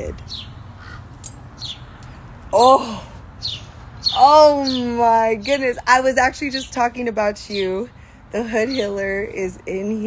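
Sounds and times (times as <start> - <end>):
low outdoor rumble: 0.0 - 10.0
high falling bird chirps: 0.2 - 7.9.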